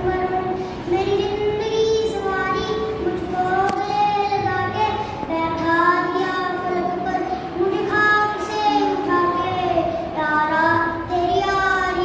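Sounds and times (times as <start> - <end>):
boy singing: 0.0 - 12.0.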